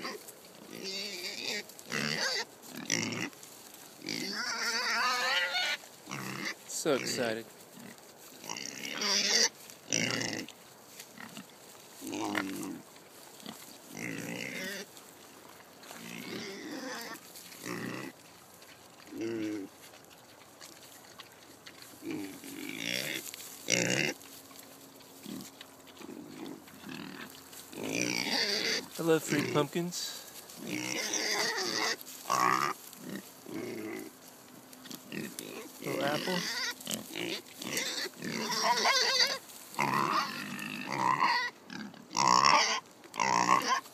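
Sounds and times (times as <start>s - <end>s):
pig high-pitched call: 0.0s - 3.3s, 4.0s - 6.6s, 8.4s - 10.5s, 16.0s - 18.1s, 25.2s - 29.6s, 30.7s - 34.1s, 35.1s - 43.9s
pigs grunting: 0.0s - 3.4s, 4.0s - 43.9s.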